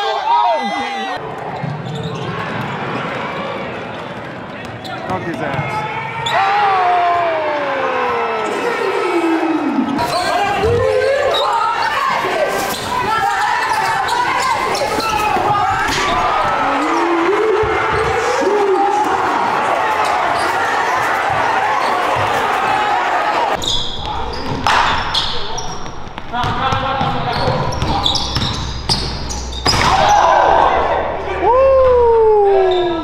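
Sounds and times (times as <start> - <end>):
players and spectators shouting: 0.0 - 24.4, 29.5 - 33.0
basketball bouncing on court: 4.4 - 5.7, 23.9 - 30.0.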